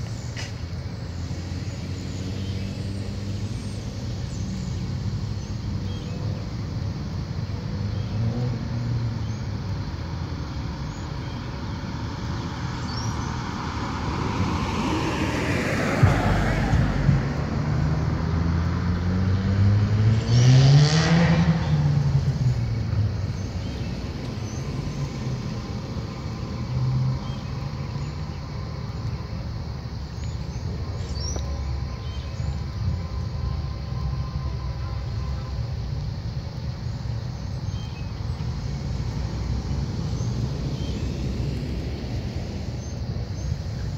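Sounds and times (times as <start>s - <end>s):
car tyre noise passing: 0.0s - 33.9s, 34.6s - 43.9s
low traffic rumble: 0.0s - 43.9s
vehicle engine revving: 0.4s - 6.0s, 12.9s - 28.5s.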